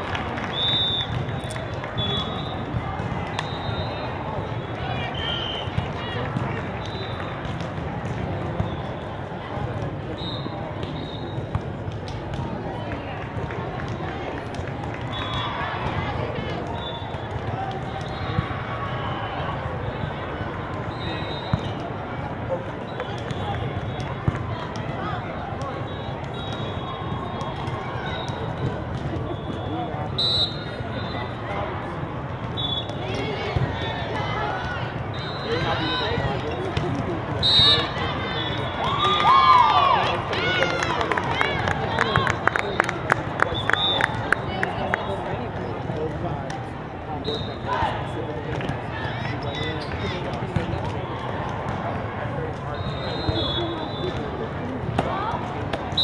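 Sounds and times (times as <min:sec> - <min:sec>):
hubbub of voices in a hall: 0:00.0 - 0:56.0.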